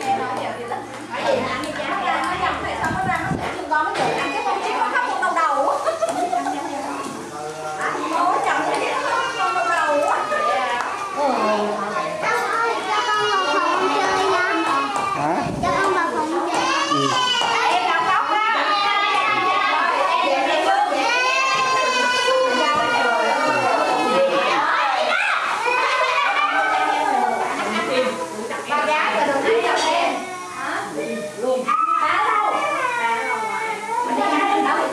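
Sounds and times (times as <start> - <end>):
children's voices: 0.0 - 28.4, 29.0 - 34.9.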